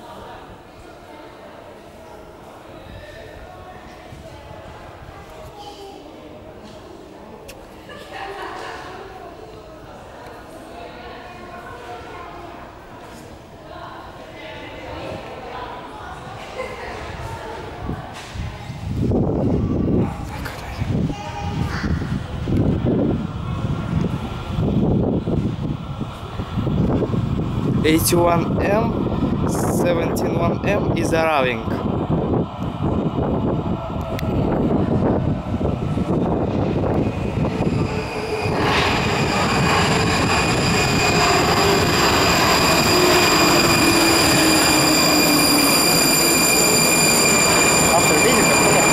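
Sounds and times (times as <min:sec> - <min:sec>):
metro train rumbling: 0:08.4 - 0:48.9
air buffeting microphone: 0:17.0 - 0:43.8
low whine falling in pitch: 0:36.0 - 0:48.9
high-pitched whines: 0:36.9 - 0:48.9.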